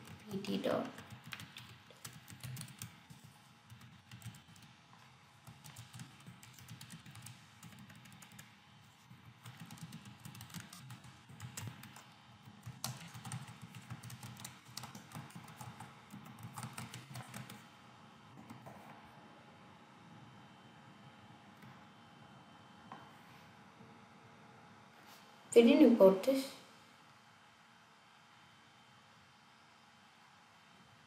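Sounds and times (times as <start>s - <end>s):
typing on computer keyboard: 0.0s - 4.8s, 5.4s - 17.6s.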